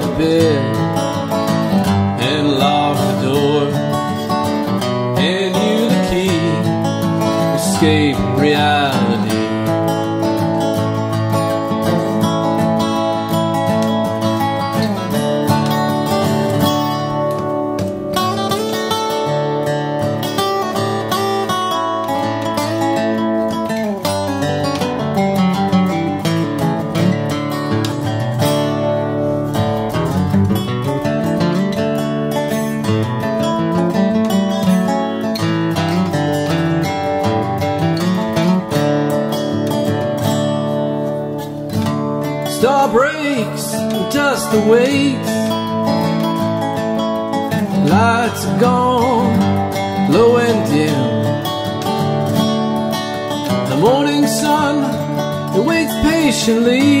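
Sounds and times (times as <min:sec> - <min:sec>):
acoustic guitar strumming chords: 0:00.0 - 0:57.0
resonator guitar lead lines: 0:00.0 - 0:57.0.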